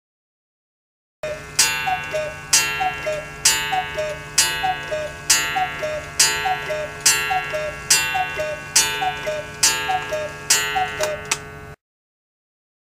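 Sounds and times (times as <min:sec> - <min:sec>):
cuckoo clock two-note whistle: 0:01.2 - 0:11.4
clock gong strike: 0:01.2 - 0:11.8.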